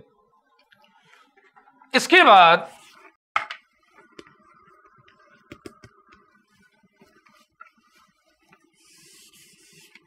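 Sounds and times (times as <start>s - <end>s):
chalk scratching on blackboard: 2.7s - 3.1s, 6.3s - 10.0s.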